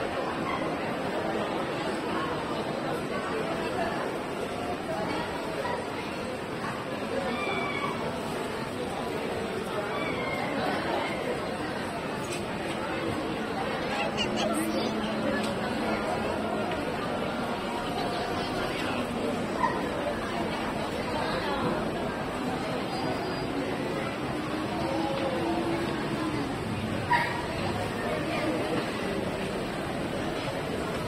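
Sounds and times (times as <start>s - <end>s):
people chattering: 0.0s - 31.0s
street noise wash: 0.0s - 31.0s.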